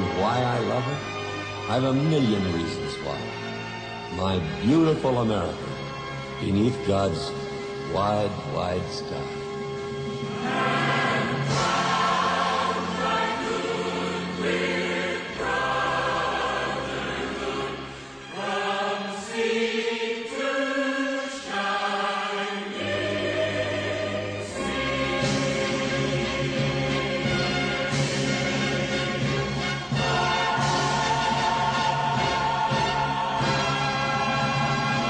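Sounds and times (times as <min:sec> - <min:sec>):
choir singing held chords: 0:10.0 - 0:35.0.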